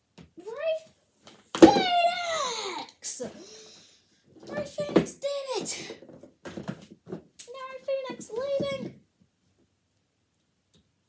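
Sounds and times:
child calling out: 1.6s - 3.0s.

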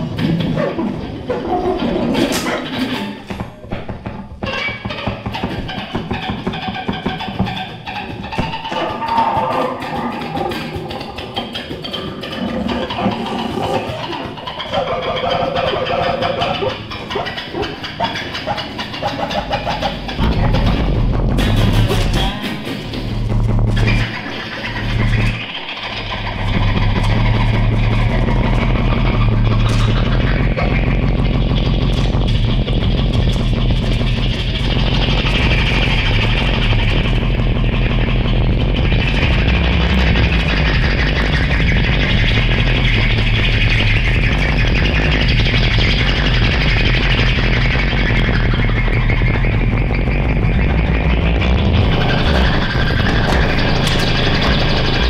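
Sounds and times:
gritty buzzing noise: 0.0s - 55.0s
low drone: 5.2s - 55.0s.

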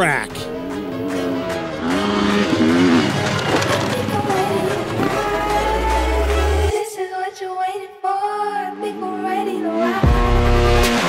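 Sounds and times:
background music: 0.0s - 11.0s
motorcycle engine revving: 0.4s - 6.7s.

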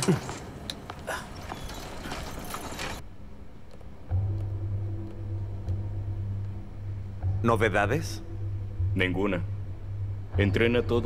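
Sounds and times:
rickshaw frame knocks and creaks: 0.0s - 3.0s.

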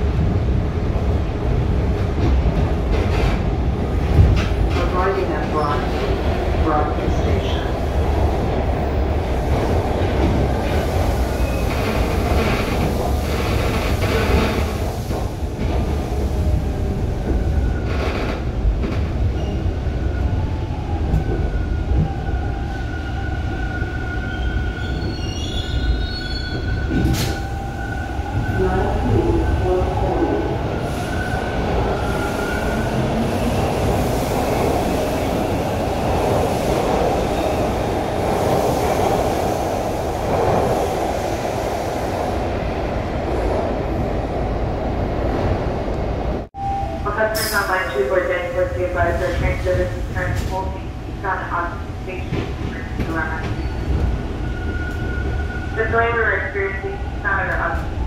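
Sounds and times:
subway car rumbling on rails: 0.0s - 58.0s.

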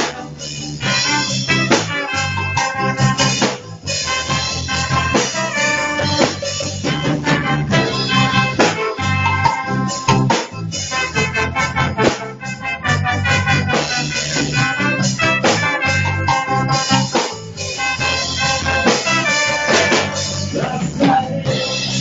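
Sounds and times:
live reggae band playing: 0.0s - 22.0s.

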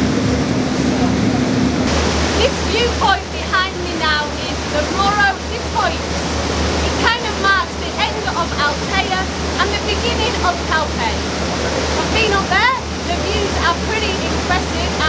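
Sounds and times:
boat engine drone: 0.0s - 15.0s
churning wake water: 0.0s - 15.0s
woman talking: 2.4s - 11.2s, 12.0s - 15.0s.

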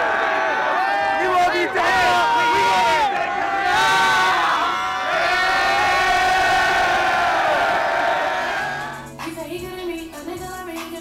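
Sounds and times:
concert crowd cheering and screaming: 0.0s - 9.1s.

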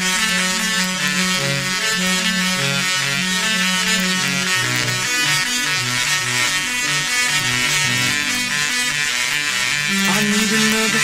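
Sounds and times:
tesla coil playing melody: 0.0s - 11.0s.

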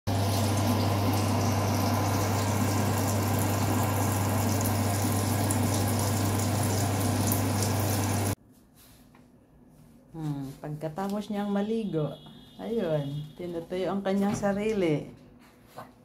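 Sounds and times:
low motor hum: 0.1s - 8.4s.

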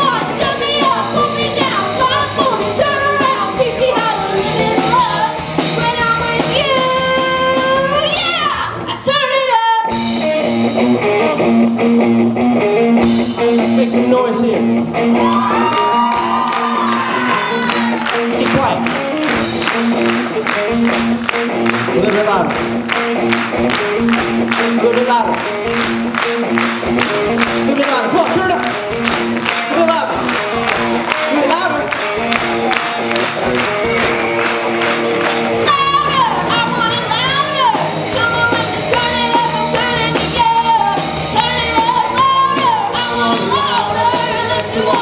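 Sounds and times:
rock band playing: 0.0s - 45.0s
crowd cheering and clapping: 15.0s - 45.0s.

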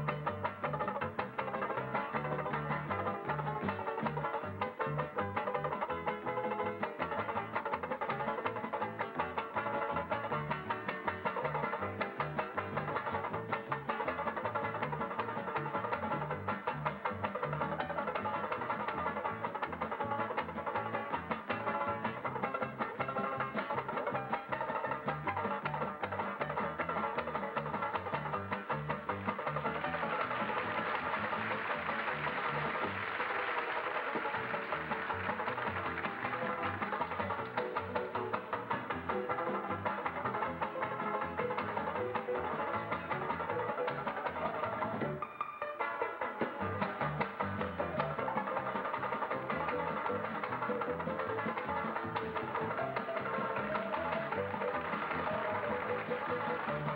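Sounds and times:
banjo picked fast: 0.0s - 56.9s.

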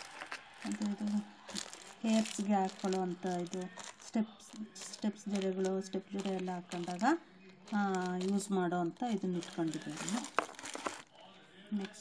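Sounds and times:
object crinkling: 0.0s - 11.1s
woman speaking: 0.6s - 10.4s.

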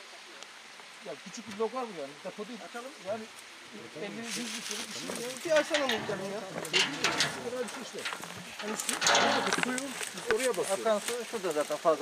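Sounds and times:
indistinct voices talking: 4.6s - 11.6s.

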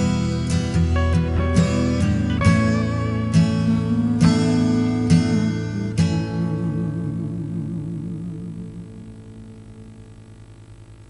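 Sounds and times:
acoustic guitar chord ringing: 0.0s - 11.0s
low steady hum: 0.0s - 11.0s.

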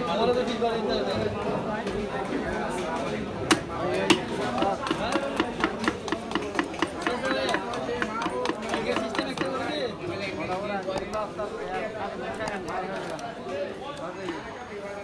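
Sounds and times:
voices talking: 0.0s - 15.0s
knife chopping on wooden block: 3.5s - 9.7s.

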